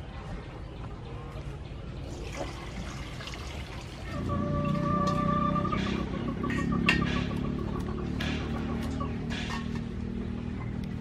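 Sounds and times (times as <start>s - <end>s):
water pouring into metal bowl: 2.2s - 4.0s.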